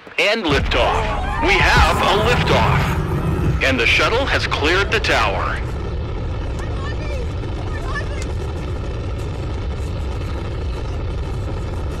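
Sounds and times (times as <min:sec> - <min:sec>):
rocket launch rumble: 0:00.5 - 0:12.0.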